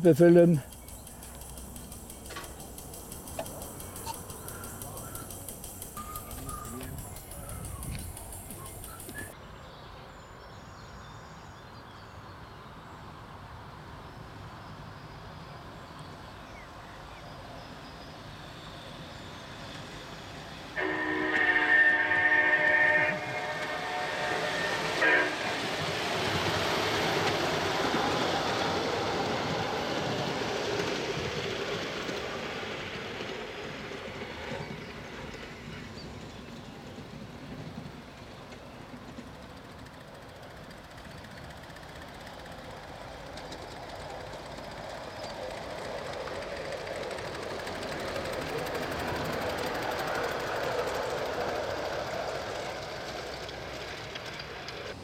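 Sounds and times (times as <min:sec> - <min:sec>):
train rolling on rails: 0:00.0 - 0:55.0
model train horn toot: 0:20.8 - 0:26.4.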